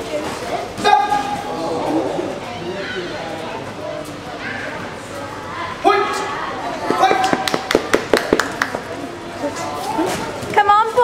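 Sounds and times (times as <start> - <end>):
voices in a large hall: 0.0 - 11.0.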